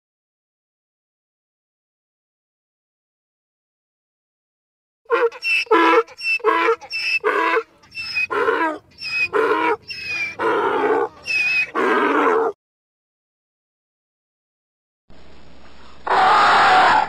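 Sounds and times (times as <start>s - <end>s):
donkey braying: 5.1s - 12.6s.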